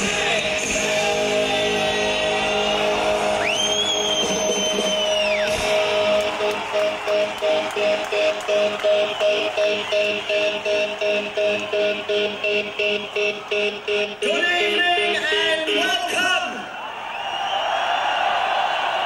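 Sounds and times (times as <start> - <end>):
electric guitars sustaining notes: 0.0 - 15.3
high whistling tone: 3.3 - 5.9.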